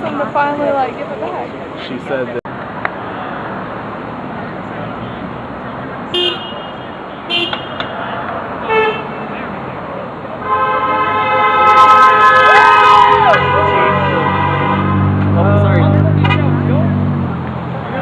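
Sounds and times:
car horns honking: 6.0s - 9.5s, 10.4s - 17.0s.

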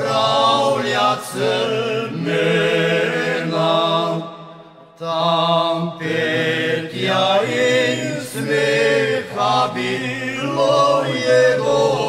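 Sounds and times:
voices singing in harmony: 0.0s - 12.0s.

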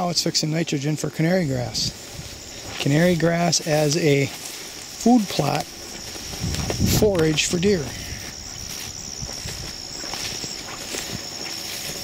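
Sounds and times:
high-pitched insect drone: 0.0s - 12.0s
footsteps through tall grass: 1.1s - 12.0s.

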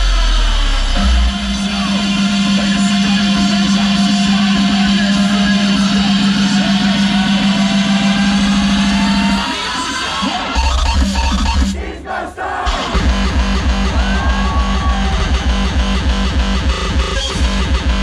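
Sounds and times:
hardstyle electronic music: 0.0s - 18.0s
pounding kick drums: 12.7s - 18.0s.

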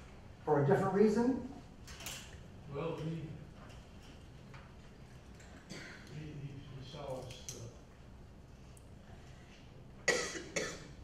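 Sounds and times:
person coughing: 5.7s - 6.0s, 10.1s - 11.0s.

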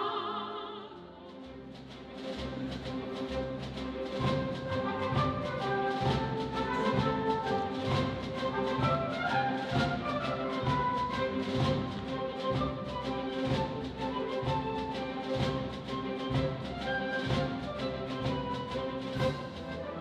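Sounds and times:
orchestra playing dance music: 1.1s - 20.0s
low drum beat: 2.5s - 19.7s.

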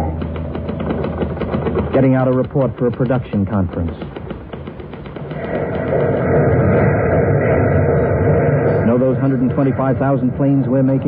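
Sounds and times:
rapid mechanical clatter of machinery: 0.0s - 11.0s.

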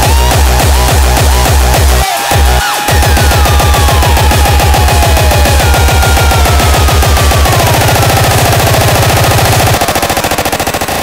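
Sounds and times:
distorted kick drum roll: 0.0s - 9.8s
hardcore techno music: 0.0s - 10.7s.

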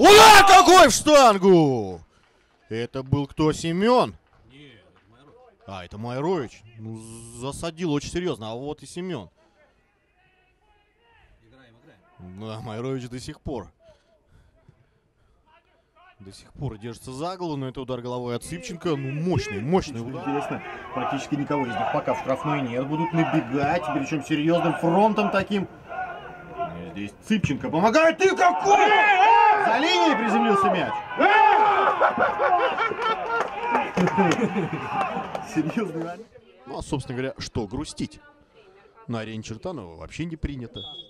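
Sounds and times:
men shouting: 0.0s - 1.4s, 19.0s - 27.0s, 28.0s - 36.0s.

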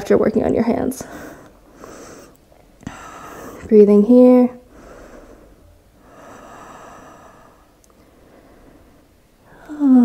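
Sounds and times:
woman breathing slowly: 1.0s - 3.7s, 4.6s - 10.0s.

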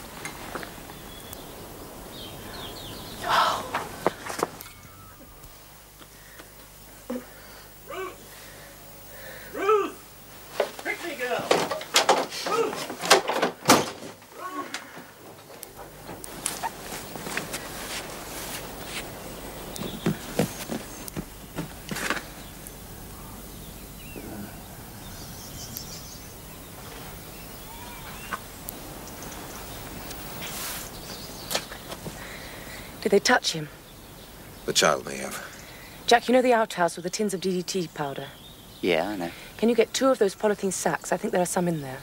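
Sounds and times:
footsteps on grass: 15.1s - 22.4s.

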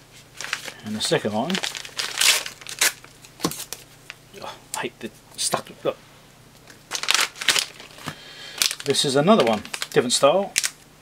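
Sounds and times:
packaging wrapper crinkling: 0.4s - 4.2s, 6.7s - 10.8s.

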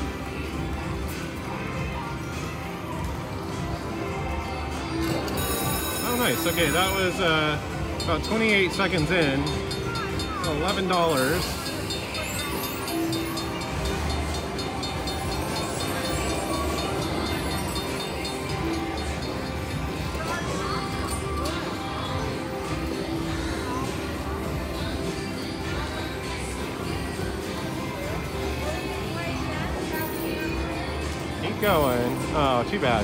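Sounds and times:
casino background noise: 0.0s - 33.0s
slot machine bonus music: 4.8s - 24.8s
train sound effects: 8.9s - 25.8s.

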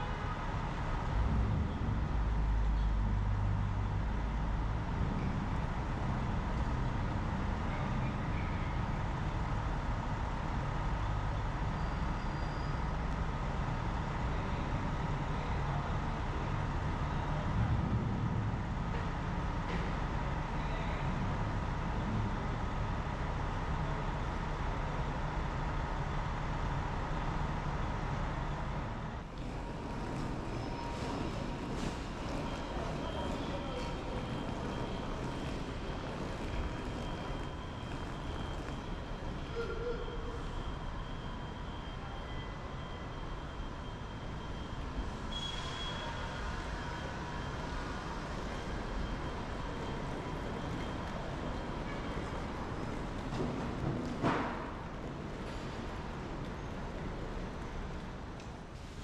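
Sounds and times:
bus engine idling: 0.0s - 59.0s
faint steady whine: 29.2s - 58.8s.

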